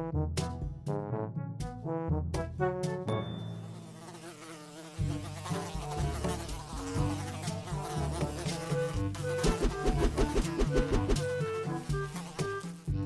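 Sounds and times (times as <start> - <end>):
housefly buzzing: 3.6 - 13.0.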